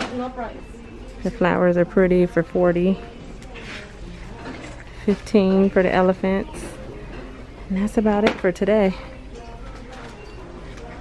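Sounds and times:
retail store background noise: 0:00.0 - 0:11.0.

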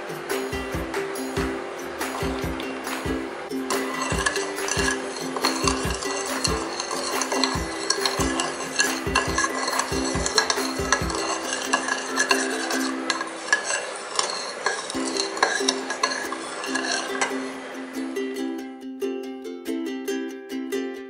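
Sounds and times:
background music: 0:00.0 - 0:18.8
spoon scraping ceramic bowl: 0:03.8 - 0:17.3.

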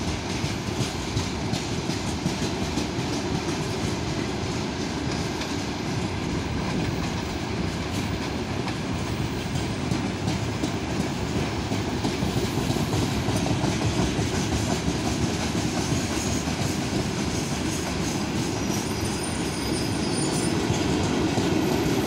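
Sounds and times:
wheels clicking over rail joints: 0:00.0 - 0:18.9
freight train rumbling: 0:00.0 - 0:22.0.

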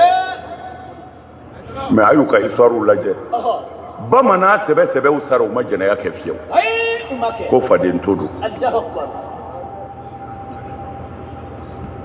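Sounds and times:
faint high whine: 0:00.0 - 0:12.0
public address system hum and hiss: 0:00.0 - 0:12.0.

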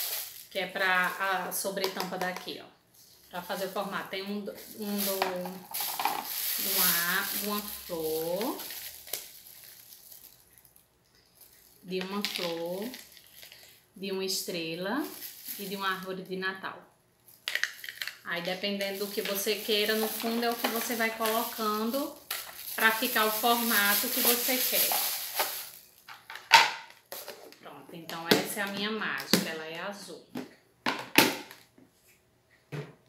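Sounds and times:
plastic bag crinkling: 0:00.0 - 0:01.5, 0:03.2 - 0:13.8, 0:15.0 - 0:16.1, 0:17.2 - 0:27.5.

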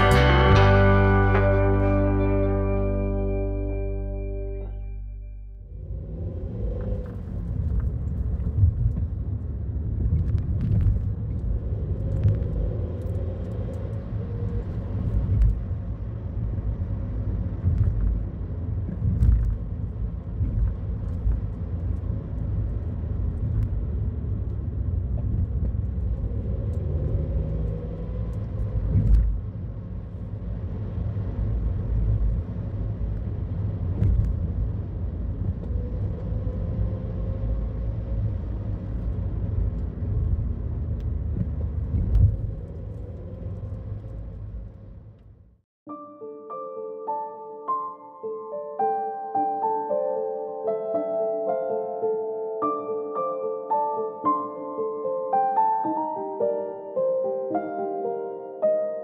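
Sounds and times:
car engine and tyres rumbling: 0:00.0 - 0:45.6.

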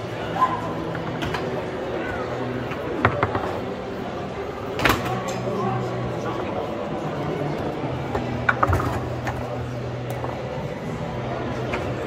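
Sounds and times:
murmur of hall ambience: 0:00.0 - 0:12.0.

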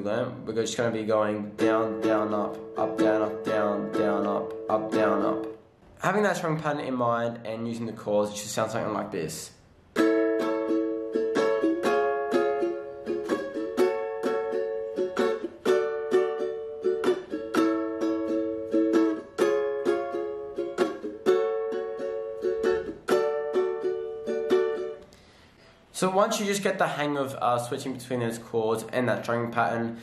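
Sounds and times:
ukulele strumming chords: 0:00.8 - 0:05.6, 0:09.9 - 0:25.4.

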